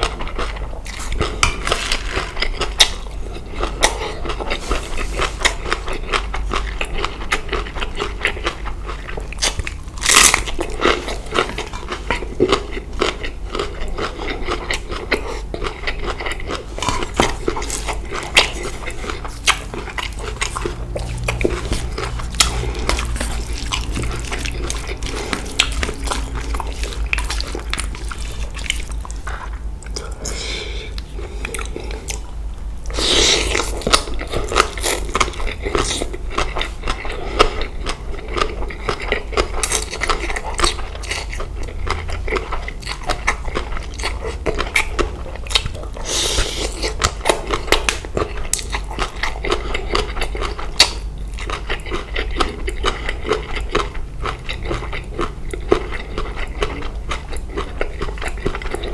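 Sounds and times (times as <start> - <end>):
chewing and crunching food: 0.0 - 58.9.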